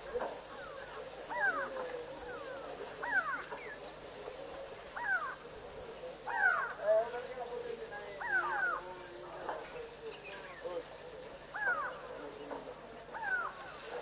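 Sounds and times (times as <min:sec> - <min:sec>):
faint steady animal call: 0:00.0 - 0:14.0.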